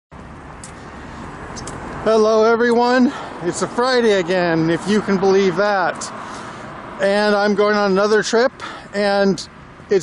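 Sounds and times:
passing cars rushing: 0:00.1 - 0:10.0.

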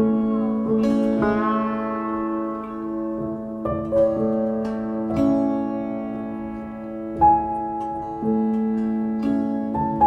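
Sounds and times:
slow piano notes: 0:00.0 - 0:10.0.

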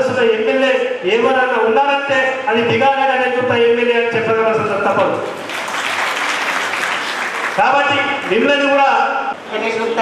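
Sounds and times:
audience applauding: 0:05.3 - 0:08.4.

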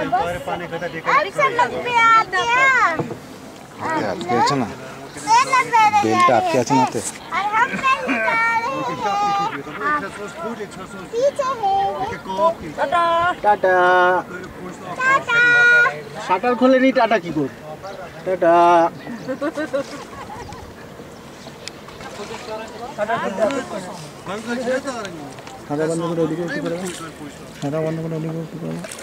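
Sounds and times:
faint open-air noise: 0:00.0 - 0:29.0
voices: 0:00.0 - 0:29.0.

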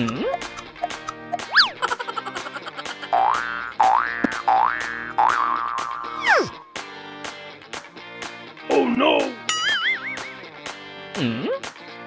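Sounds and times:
comedy background music: 0:00.0 - 0:12.0
cartoon whistle rise and fall: 0:01.5 - 0:01.7, 0:06.2 - 0:06.6
cartoon falling glide: 0:06.1 - 0:06.6.

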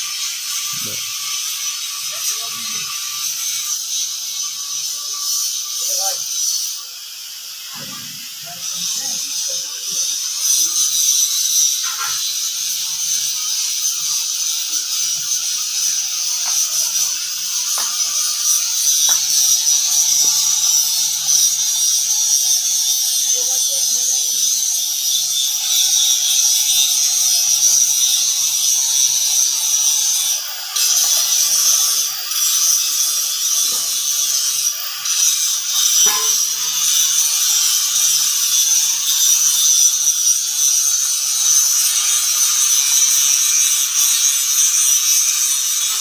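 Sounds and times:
high-pitched rasping hiss: 0:00.0 - 0:46.0.

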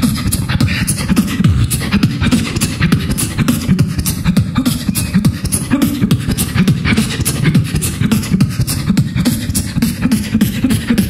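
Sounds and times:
person beatboxing: 0:00.0 - 0:11.0.

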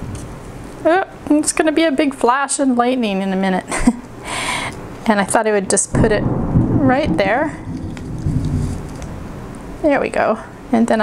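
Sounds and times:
distant thunder rumble: 0:05.7 - 0:10.7.

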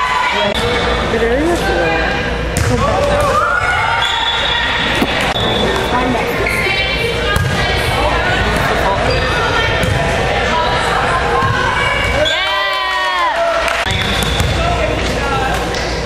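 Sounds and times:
players calling: 0:02.3 - 0:16.0
volleyball being hit and bouncing: 0:04.8 - 0:06.0, 0:13.9 - 0:14.7.

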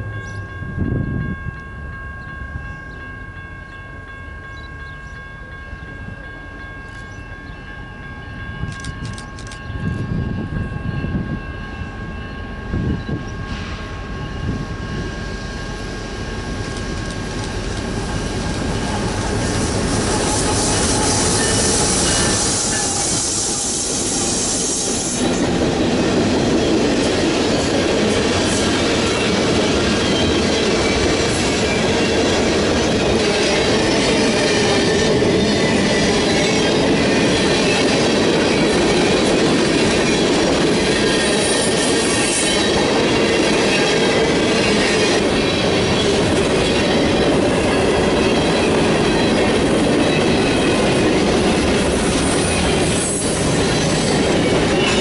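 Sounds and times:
train wheels rolling on rails: 0:00.0 - 0:55.0.

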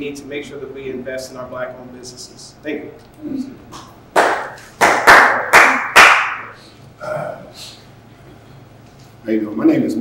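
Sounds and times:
people clapping: 0:03.8 - 0:06.6.

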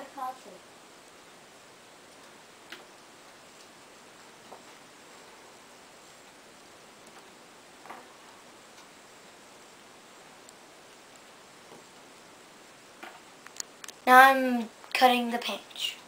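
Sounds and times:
steady low hiss: 0:00.0 - 0:16.0.

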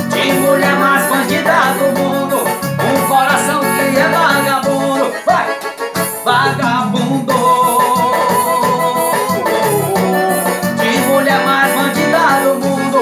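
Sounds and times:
bass and beat: 0:00.0 - 0:04.9, 0:06.3 - 0:13.0
person singing: 0:00.0 - 0:05.6, 0:06.3 - 0:13.0
electronic keyboard melody: 0:00.0 - 0:13.0.

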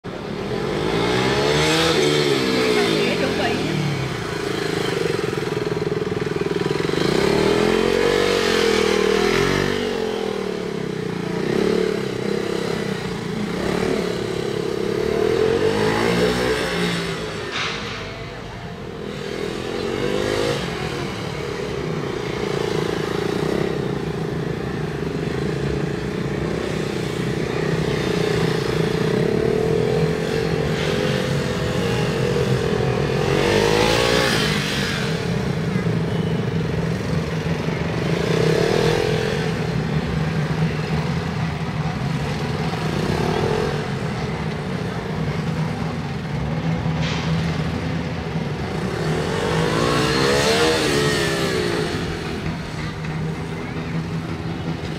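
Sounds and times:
motorcycle engine revving: 0:00.1 - 0:54.9.

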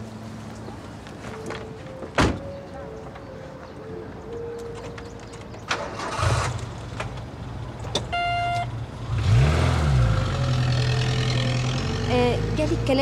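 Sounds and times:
car engine starting and idling: 0:04.8 - 0:13.0.

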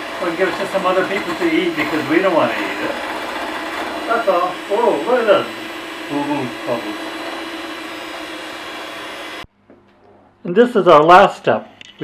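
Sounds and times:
electric hand mixer whirring: 0:00.0 - 0:09.5.

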